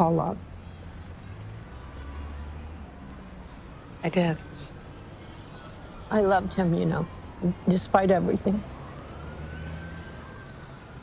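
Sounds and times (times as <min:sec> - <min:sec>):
distant siren wailing: 0:00.0 - 0:11.0
low traffic rumble: 0:00.0 - 0:11.0.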